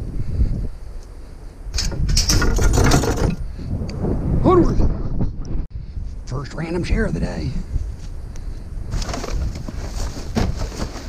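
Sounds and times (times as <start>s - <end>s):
low road and engine rumble: 0.0s - 4.2s
trailer rattling and clanking: 1.8s - 3.4s.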